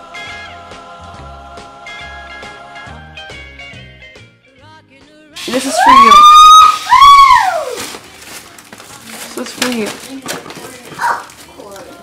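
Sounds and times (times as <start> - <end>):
high-pitched vocal note: 5.5 - 7.7.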